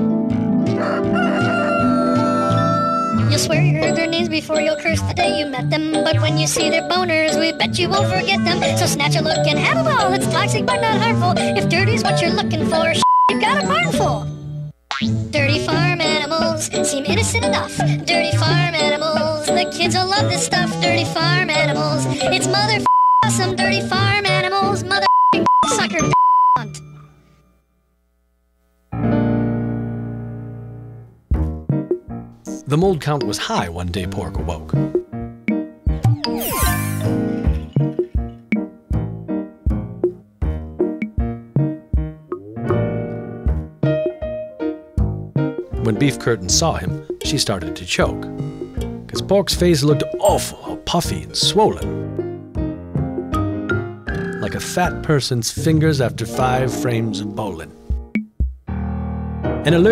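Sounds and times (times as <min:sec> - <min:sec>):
rooster crowing: 0:00.7 - 0:03.3
censor bleep: 0:13.0 - 0:13.4, 0:22.9 - 0:23.4, 0:25.0 - 0:27.0
theme music: 0:29.0 - 0:59.9.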